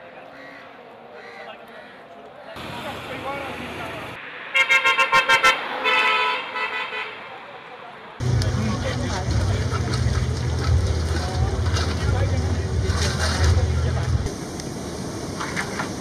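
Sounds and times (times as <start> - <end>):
street crowd chatter: 0.0 - 4.5, 6.7 - 16.0
vehicle horn honking: 4.5 - 7.2.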